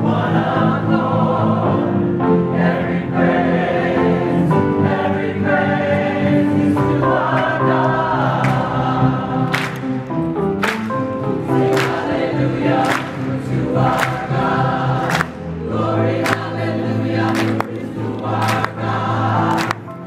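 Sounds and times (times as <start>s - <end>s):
mixed choir singing: 0.0s - 20.0s
sharp clap-like crack: 9.5s - 9.9s, 10.6s - 11.0s, 15.1s - 15.4s, 17.3s - 17.8s.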